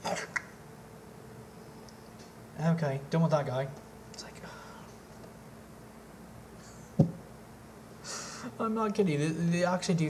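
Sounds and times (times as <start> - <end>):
man whispering: 4.1 - 4.9.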